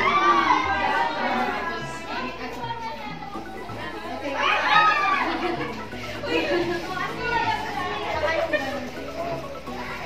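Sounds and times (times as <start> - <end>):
people chattering excitedly: 0.0 - 10.0.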